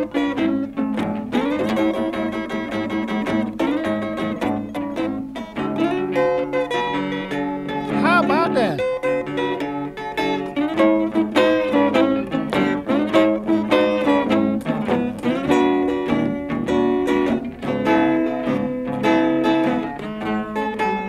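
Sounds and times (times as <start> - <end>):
blues electric guitar: 0.0 - 21.0.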